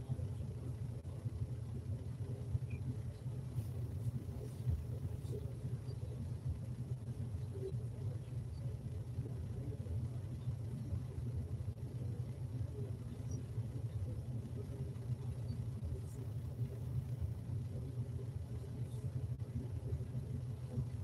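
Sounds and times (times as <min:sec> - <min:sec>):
low room rumble: 0:00.0 - 0:21.0.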